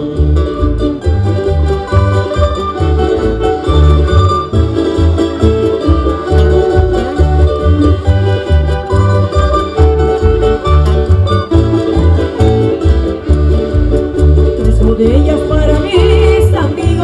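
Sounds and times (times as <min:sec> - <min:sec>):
accordion: 0:00.0 - 0:17.0
folk band playing dance tune: 0:00.0 - 0:17.0
strummed guitars: 0:00.0 - 0:17.0.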